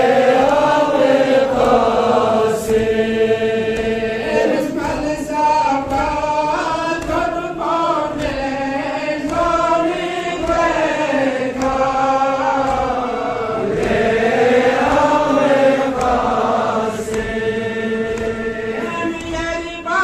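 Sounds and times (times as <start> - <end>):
man chanting into microphone: 3.4 - 13.7, 16.6 - 20.0.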